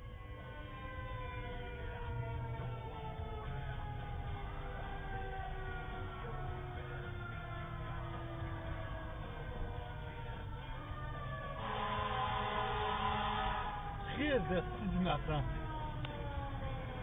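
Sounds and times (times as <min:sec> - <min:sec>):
fire truck siren wailing: 0:00.0 - 0:17.0
low road rumble: 0:00.0 - 0:17.0.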